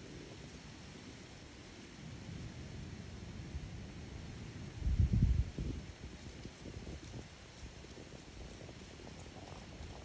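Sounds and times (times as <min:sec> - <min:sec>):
wind buffeting microphone: 0:04.6 - 0:10.0.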